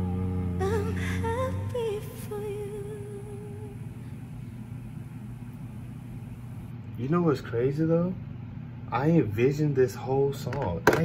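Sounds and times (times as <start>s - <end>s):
woman singing held note with vibrato: 0.0s - 4.2s
low sustained chord: 0.0s - 4.4s.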